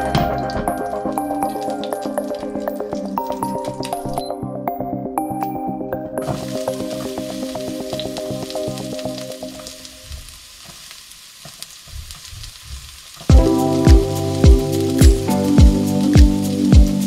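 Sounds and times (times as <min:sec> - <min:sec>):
background music with heavy beat: 0:00.0 - 0:01.0, 0:13.3 - 0:17.0
onion sizzling in hot oil: 0:06.2 - 0:17.0.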